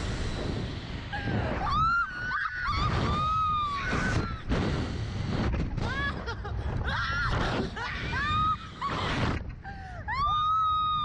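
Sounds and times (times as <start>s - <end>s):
women screaming: 1.6s - 4.4s, 10.1s - 11.0s.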